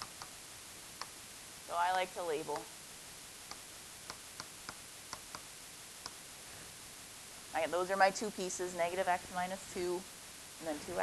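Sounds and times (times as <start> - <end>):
steady low hiss: 0.0 - 11.0.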